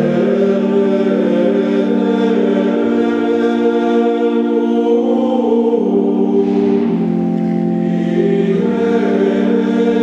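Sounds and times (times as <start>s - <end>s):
choir chanting in unison: 0.0s - 10.0s.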